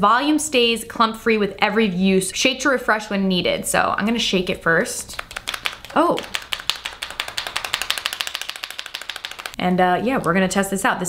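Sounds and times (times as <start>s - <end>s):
mascara tube rattling: 5.1s - 9.6s.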